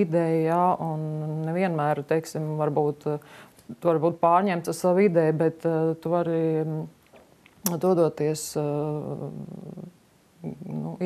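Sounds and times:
woman speaking: 0.0s - 7.0s, 7.6s - 11.0s.

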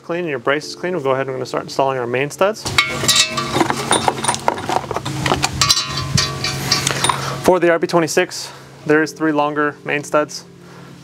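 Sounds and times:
steel studs clinking: 2.7s - 7.5s.

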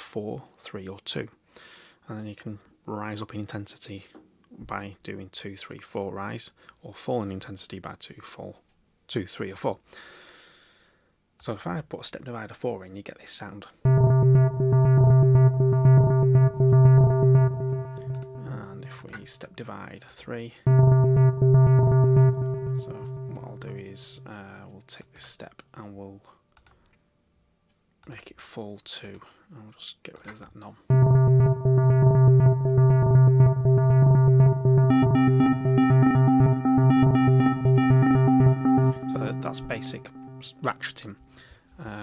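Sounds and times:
low synth note stuttering: 13.9s - 19.1s, 20.7s - 24.5s, 30.9s - 40.8s.

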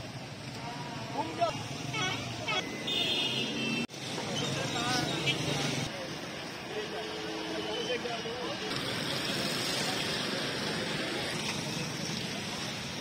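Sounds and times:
traffic noise: 0.0s - 13.0s.

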